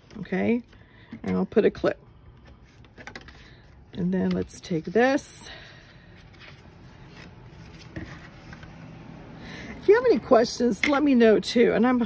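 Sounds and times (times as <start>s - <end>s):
cardstock handling: 6.2s - 8.8s.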